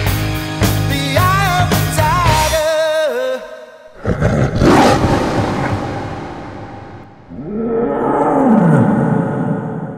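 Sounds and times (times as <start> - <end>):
big cat roar with echo: 4.0 - 9.9.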